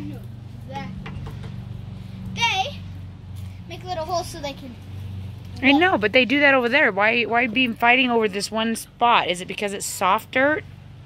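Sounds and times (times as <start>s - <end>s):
steady low hum: 0.0s - 11.0s
children calling: 2.2s - 3.0s.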